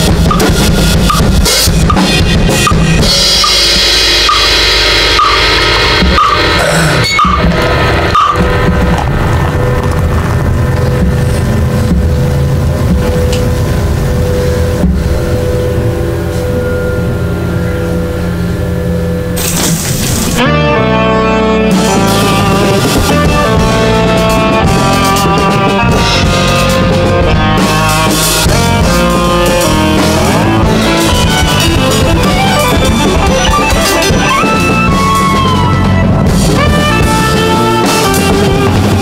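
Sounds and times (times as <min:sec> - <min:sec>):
drum kit playing: 0:00.0 - 0:39.0
recorded rock music: 0:00.0 - 0:39.0
rising sweep: 0:01.9 - 0:37.8.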